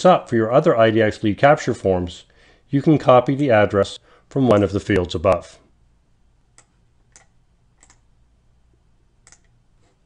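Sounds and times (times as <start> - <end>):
low room hum: 0.0 - 10.0
computer mouse clicks: 6.5 - 8.1, 9.2 - 9.6.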